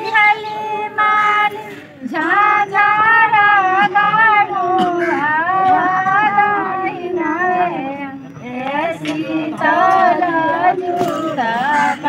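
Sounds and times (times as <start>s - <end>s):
women singing folk song: 0.0s - 12.0s.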